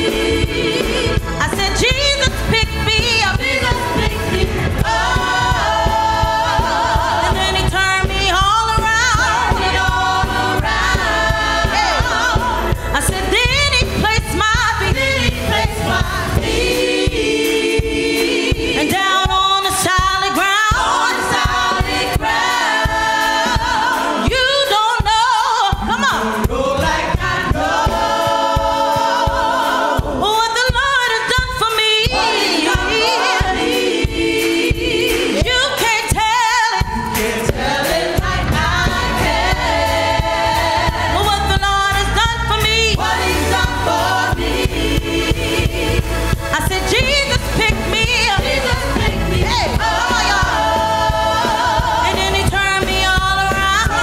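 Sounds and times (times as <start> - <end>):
gospel choir singing in harmony: 0.0 - 54.0
low bass: 38.2 - 54.0.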